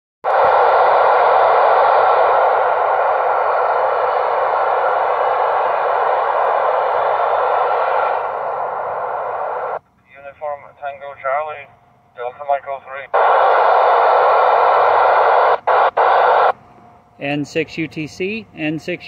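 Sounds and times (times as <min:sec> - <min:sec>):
radio static hiss: 0:00.2 - 0:11.3, 0:12.2 - 0:16.6
radio speech: 0:00.4 - 0:11.6, 0:12.2 - 0:16.5.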